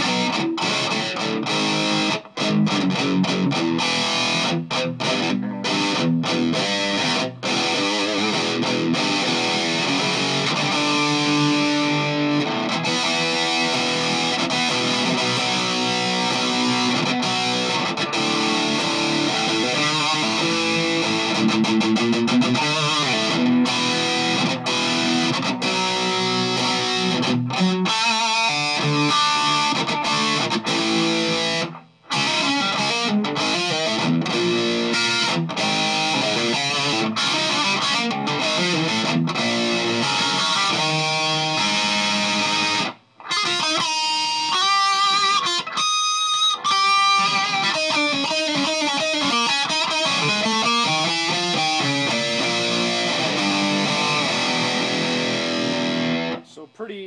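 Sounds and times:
heavily distorted electric guitar: 0.0s - 57.0s.

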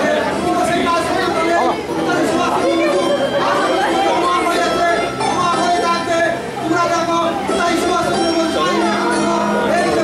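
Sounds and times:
man talking through sound system: 0.0s - 10.0s.

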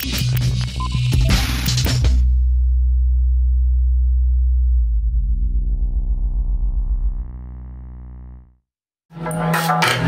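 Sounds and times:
deep bass tone: 2.2s - 8.7s.

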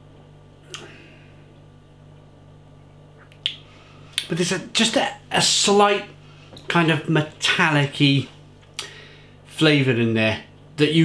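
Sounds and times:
steady low hum: 0.0s - 11.0s
mouth clicks and lip smacks: 3.2s - 4.3s.

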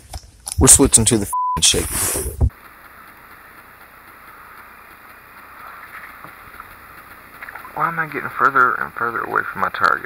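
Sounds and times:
faint water sounds: 2.6s - 10.0s.

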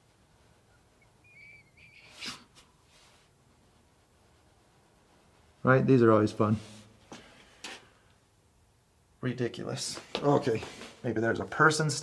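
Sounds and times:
man whistling softly: 0.7s - 2.2s.

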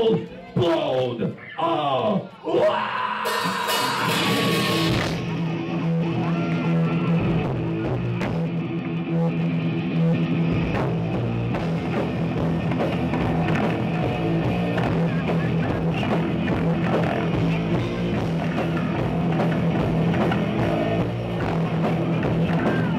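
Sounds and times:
distorted electric guitars riffing: 2.3s - 22.9s
bass guitar: 2.4s - 22.9s
pounding drum kit: 2.7s - 9.4s, 10.0s - 22.9s.

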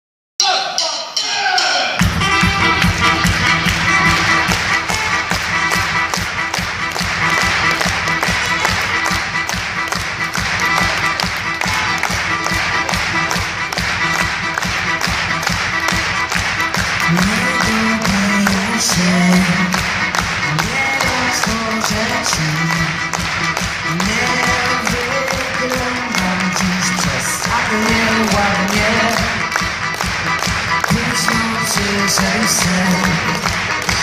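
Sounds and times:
fast percussive beat: 0.4s - 34.0s
person singing: 17.0s - 23.2s, 23.8s - 29.7s, 30.8s - 34.0s.

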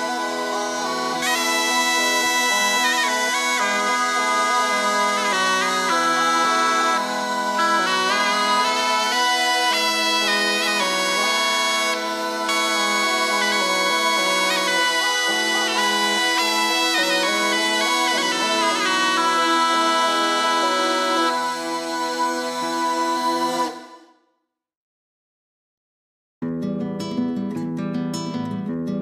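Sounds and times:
bagpipes folk melody: 0.0s - 23.9s.

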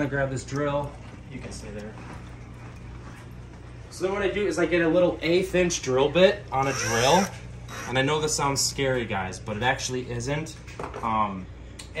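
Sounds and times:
aquarium air pumps humming: 0.0s - 12.0s.

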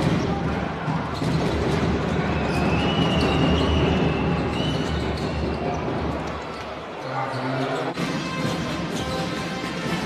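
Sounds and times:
basketball bouncing on court: 0.0s - 3.6s
crowd noise: 0.0s - 10.0s.

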